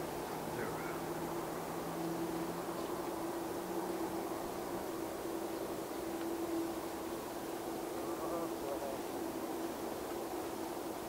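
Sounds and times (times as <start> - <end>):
jet engines idling whine: 0.0 - 11.0.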